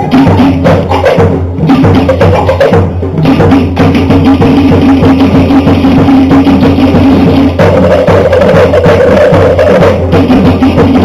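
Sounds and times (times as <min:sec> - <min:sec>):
fast wooden drumming: 0:00.0 - 0:11.0.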